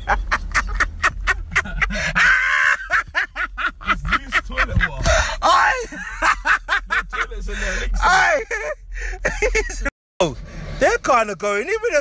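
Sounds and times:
man laughing: 0.0 - 9.9.

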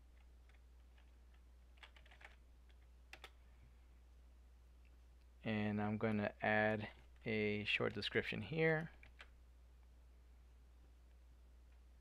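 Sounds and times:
low steady hum: 0.0 - 12.0
computer keyboard typing: 0.1 - 3.4, 8.8 - 9.4.

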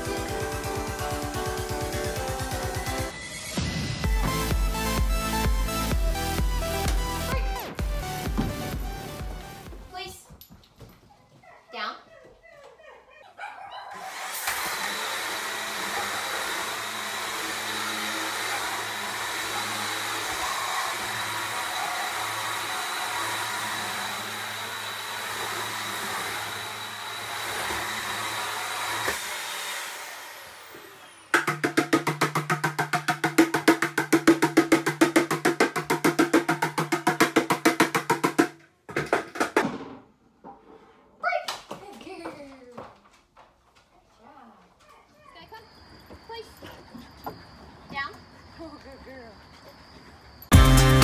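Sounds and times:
rapid rhythmic beating: 31.4 - 38.6.

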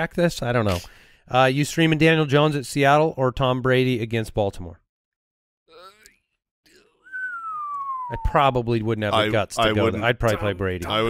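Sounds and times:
person whistling falling note: 7.0 - 8.4.

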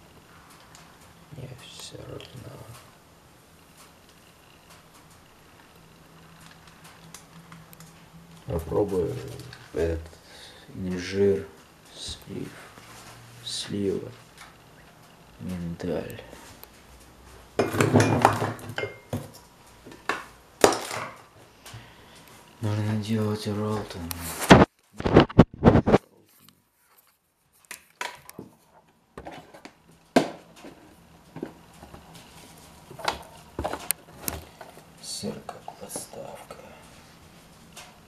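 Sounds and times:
dishes and utensils clattering: 17.6 - 19.3.

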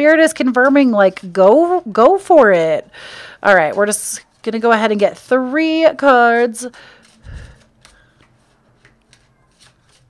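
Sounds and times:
cards being shuffled: 6.6 - 10.0
cards clicking together: 7.0 - 10.0.

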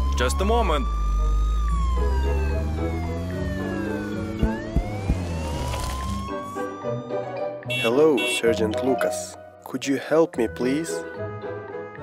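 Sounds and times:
police siren wailing: 0.0 - 8.5
background music: 0.0 - 12.0.

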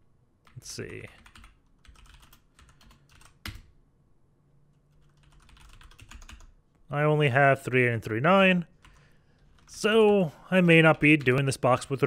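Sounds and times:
keyboard typing: 0.4 - 3.7, 4.8 - 6.6, 8.7 - 10.2.

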